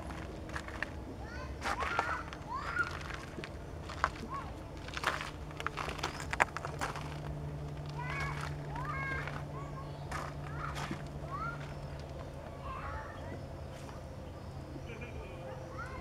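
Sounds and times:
steady low hum: 0.0s - 16.0s
chirping bird calls: 8.8s - 16.0s.

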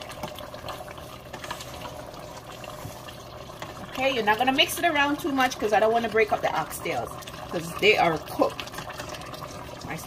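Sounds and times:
stew bubbling in a pot: 0.0s - 10.0s.

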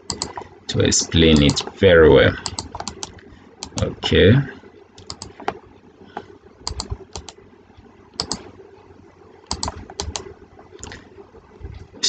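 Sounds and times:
computer mouse and keyboard clicks: 0.0s - 0.5s, 1.3s - 1.7s, 2.4s - 3.9s, 5.0s - 5.6s, 6.2s - 7.4s, 8.2s - 8.5s, 9.5s - 11.0s
faint steady hum: 0.0s - 12.0s.

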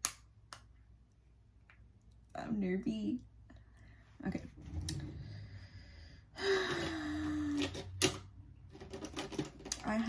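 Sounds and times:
breathy vocal sigh: 5.3s - 7.7s.

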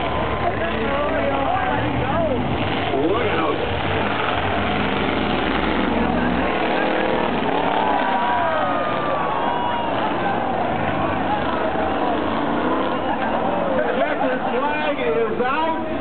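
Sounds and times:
race car engines droning: 0.0s - 16.0s
spectators shouting: 5.9s - 16.0s.

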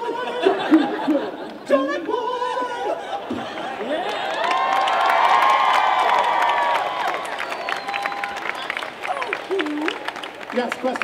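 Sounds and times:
audience cheering and whooping: 2.6s - 11.0s
audience clapping: 3.6s - 11.0s.

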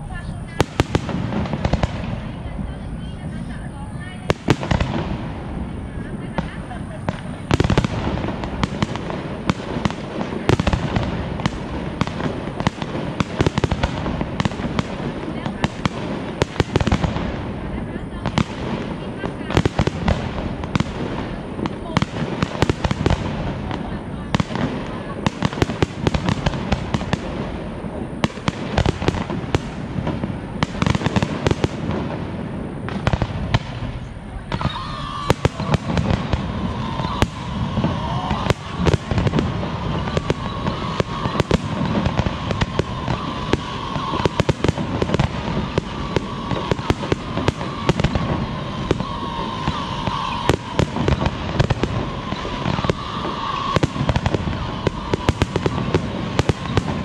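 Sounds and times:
fireworks bursts and bangs: 0.0s - 57.0s.

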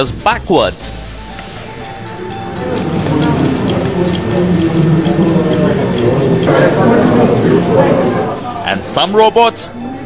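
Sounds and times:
spectators talking and calling out: 1.1s - 10.0s.

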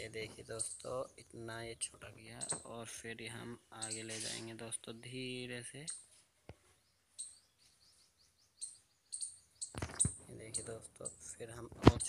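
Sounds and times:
faint high bird chirps: 0.0s - 12.0s.

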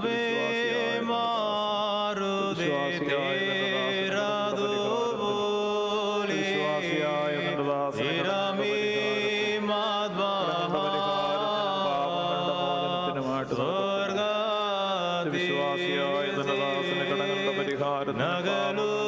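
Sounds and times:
person chanting a hymn: 0.0s - 19.0s.

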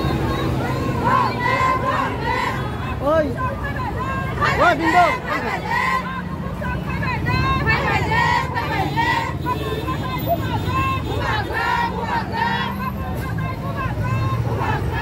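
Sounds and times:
crowd chanting slogans: 0.0s - 15.0s.

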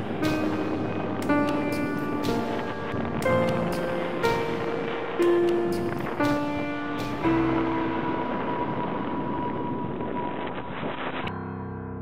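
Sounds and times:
solo piano: 0.0s - 11.2s
steady hiss: 0.0s - 11.3s.

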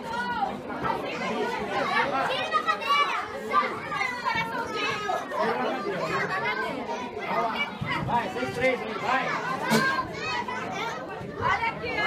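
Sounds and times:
children's voices: 0.0s - 12.0s
people talking and calling out: 0.0s - 12.0s.

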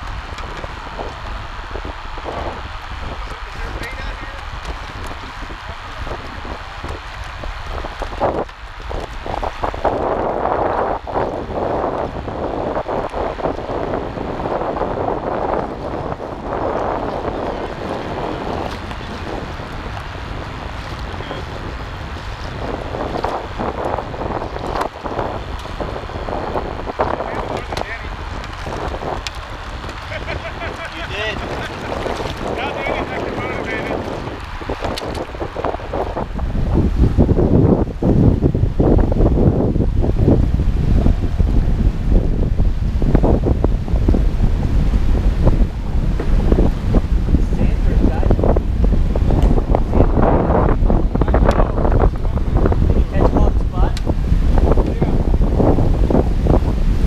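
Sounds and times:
water washing along hull: 0.0s - 57.0s
wind buffeting microphone: 0.0s - 57.0s.

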